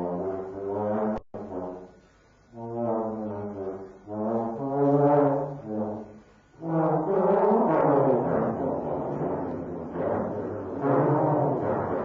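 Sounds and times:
trombone playing low held notes: 0.0s - 12.0s.

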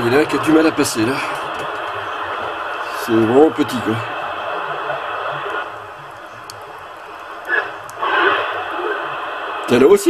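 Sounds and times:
faint unreadable radio signals: 0.0s - 10.0s
radio hiss and static: 0.0s - 10.0s.

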